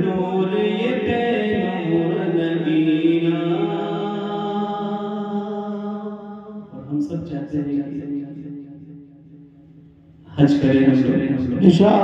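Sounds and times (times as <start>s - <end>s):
man singing unaccompanied: 0.0s - 5.2s.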